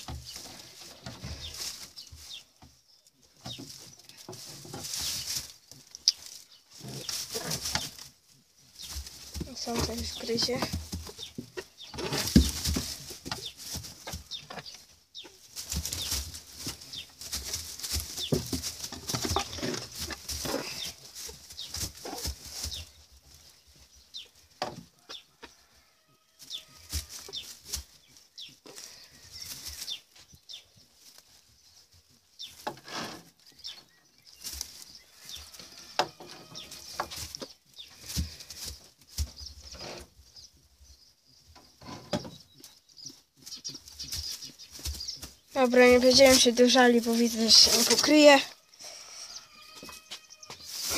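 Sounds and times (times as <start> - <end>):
rabbits rustling in straw: 0.0 - 50.9.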